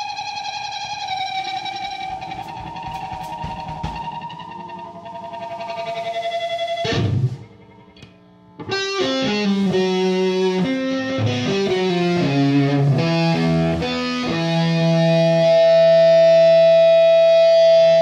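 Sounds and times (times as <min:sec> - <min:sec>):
electric guitar playing: 0:00.0 - 0:18.0.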